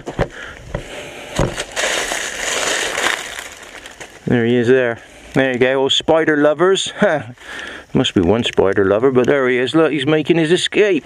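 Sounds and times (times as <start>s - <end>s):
dry leaves crackling and rustling: 1.5s - 4.7s.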